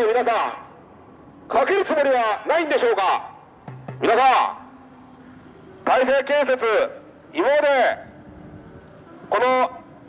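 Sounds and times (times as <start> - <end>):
faint low street noise: 0.0 - 10.0.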